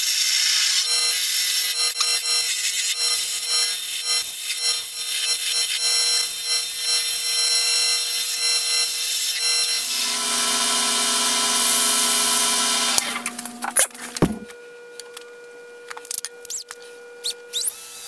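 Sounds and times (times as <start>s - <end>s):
wood lathe humming: 9.5s - 14.5s
chisel scraping spinning wood: 9.8s - 14.5s.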